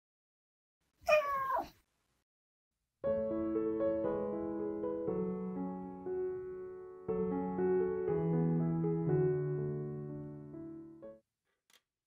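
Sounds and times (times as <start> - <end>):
cat meowing: 1.1 - 1.8.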